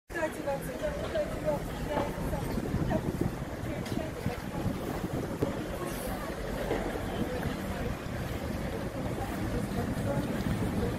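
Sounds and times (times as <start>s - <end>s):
wind buffeting microphone: 0.6s - 10.9s.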